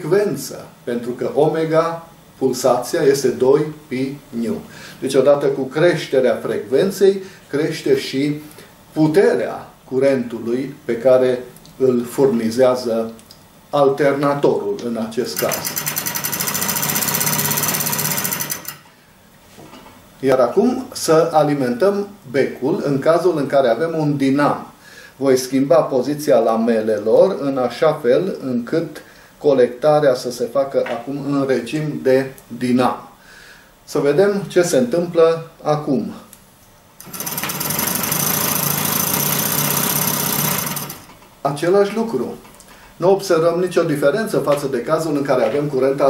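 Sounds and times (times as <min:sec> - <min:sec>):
hand-cranked alternator clattering: 0:15.4 - 0:18.8, 0:37.0 - 0:41.1.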